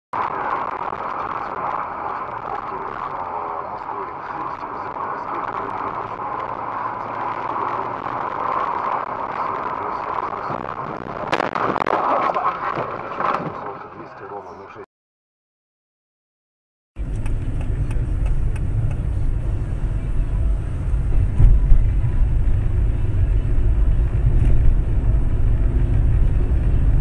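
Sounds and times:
car road noise on wet street: 0.2 - 14.4, 17.0 - 27.0.

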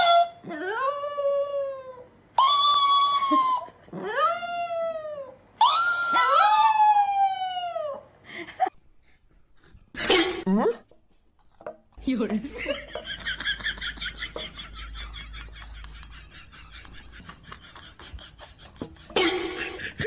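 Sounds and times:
dog howling: 0.0 - 8.1.

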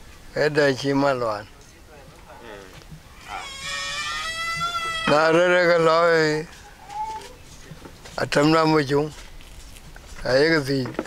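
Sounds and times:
high-pitched animal call: 3.1 - 7.4.

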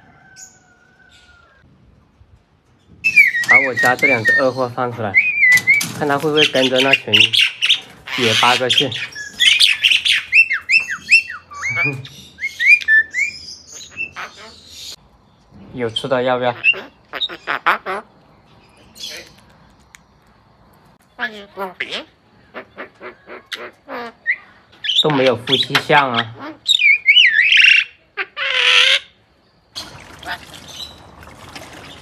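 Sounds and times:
birds whistling upward notes: 2.9 - 15.0, 26.6 - 28.0
high thin bird chirps: 2.9 - 17.6.

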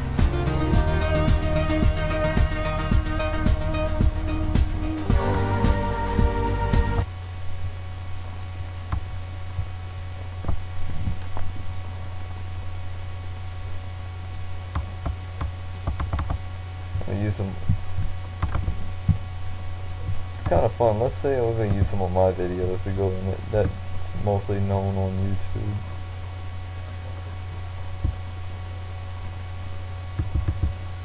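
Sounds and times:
electrical mains hum: 0.0 - 31.0.

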